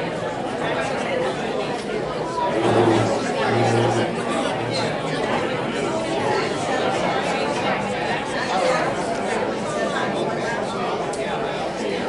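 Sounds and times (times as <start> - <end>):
murmur of overlapping conversation: 0.0 - 12.0.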